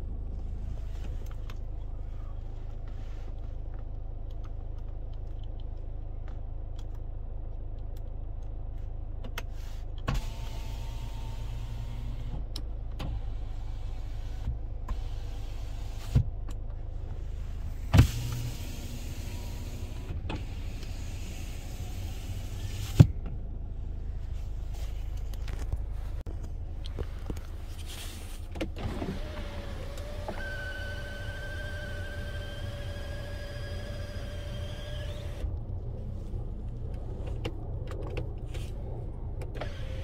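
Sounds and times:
power window motor whining: 28.7s - 35.5s, 39.6s - 40.0s.

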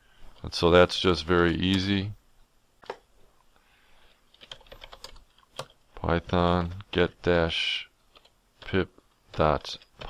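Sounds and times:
computer keyboard typing: 4.3s - 5.8s, 8.1s - 10.0s.

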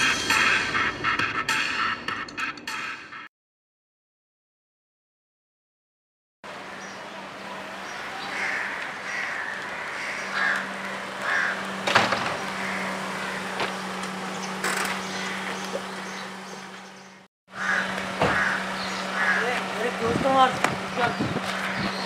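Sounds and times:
crows cawing: 7.8s - 16.2s, 17.5s - 20.0s, 21.4s - 22.0s
raised voices calling: 17.6s - 22.0s.

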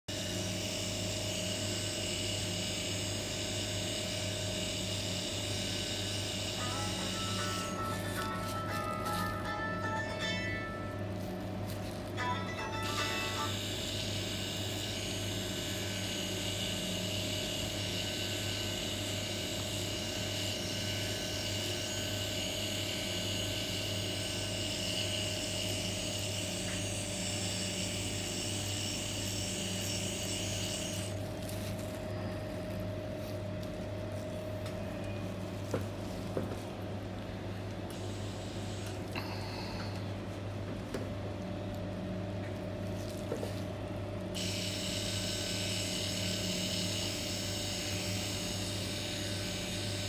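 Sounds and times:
tattoo pen machine buzzing: 0.1s - 36.7s, 37.9s - 39.7s, 44.3s - 50.0s
constant low hum: 29.5s - 44.4s.

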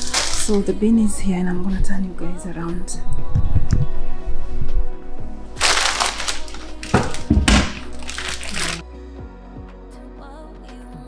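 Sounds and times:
plastic bag crinkling: 0.0s - 0.8s, 5.6s - 8.8s
background music: 0.0s - 11.0s
dull thumps: 6.8s - 8.7s.

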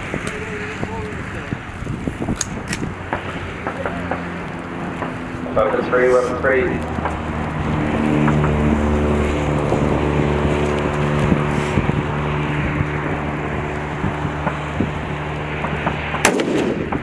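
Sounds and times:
engine hum: 0.0s - 17.0s
loud close gunshot: 16.2s - 17.0s
rifle gunshots: 16.2s - 17.0s.

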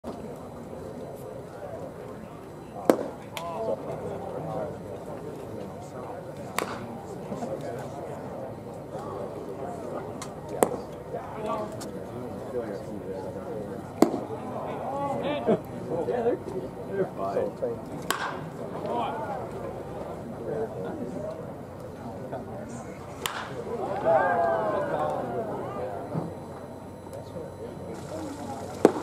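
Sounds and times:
crowd chatter: 0.0s - 29.0s
people talking: 0.0s - 29.0s
baseball sharp crack: 2.9s - 3.5s, 6.5s - 6.9s, 14.0s - 14.3s, 18.0s - 18.6s, 23.2s - 23.6s, 28.8s - 29.0s
baseball smacking into mitt: 6.6s - 6.8s, 14.0s - 14.2s, 18.1s - 18.4s, 23.2s - 23.6s.

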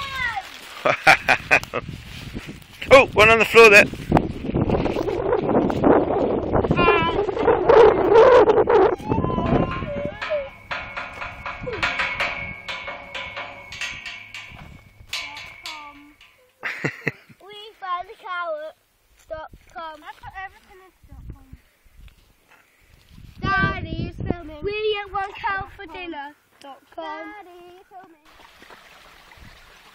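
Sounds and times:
child saying wow: 0.0s - 0.5s, 6.7s - 7.4s, 8.2s - 10.5s
metal gate being knocked: 9.3s - 16.6s.

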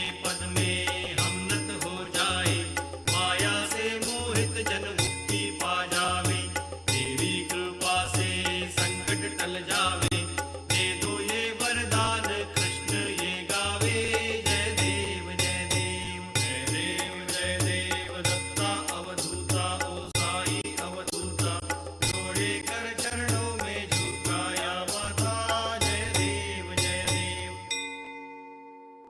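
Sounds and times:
voices chanting a hymn: 0.0s - 27.6s
percussion strikes: 0.0s - 29.0s.

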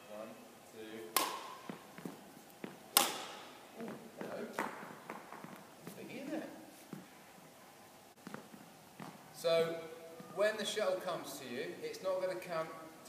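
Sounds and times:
racket striking shuttlecock: 1.1s - 2.1s, 2.9s - 3.6s.

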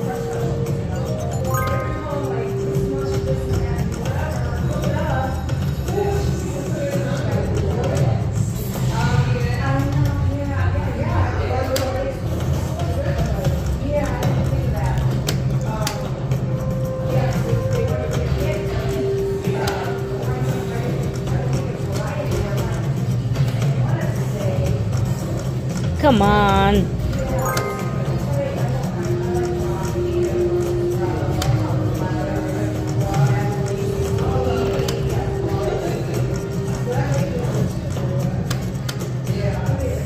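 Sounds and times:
slot machine electronic music: 0.0s - 4.1s, 26.0s - 29.7s.

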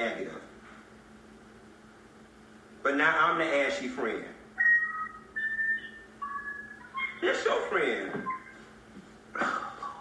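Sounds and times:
high whistle-like notes: 4.6s - 7.2s, 8.1s - 8.7s.

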